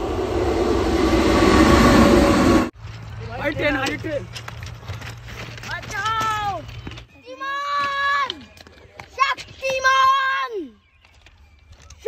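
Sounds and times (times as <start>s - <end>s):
train rumbling past: 0.0s - 3.4s.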